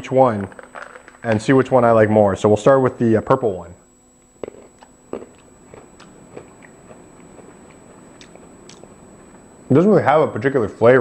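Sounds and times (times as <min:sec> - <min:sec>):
person chewing tablet crunching: 0:04.4 - 0:09.0.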